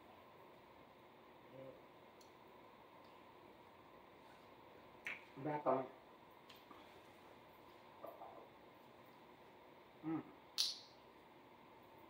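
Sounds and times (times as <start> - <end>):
person humming: 10.0 - 10.4.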